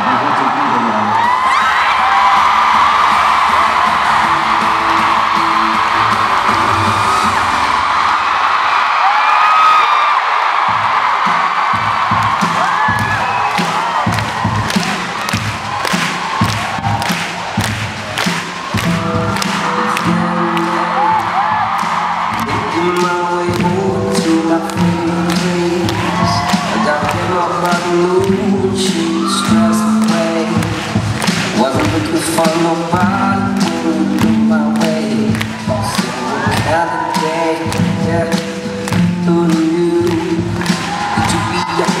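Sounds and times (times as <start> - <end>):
music: 0.0 - 8.8, 10.6 - 42.0
audience cheering and screaming: 0.0 - 34.0, 35.0 - 37.9, 39.5 - 42.0
rhythmic tapping beat: 1.2 - 7.5, 10.7 - 42.0.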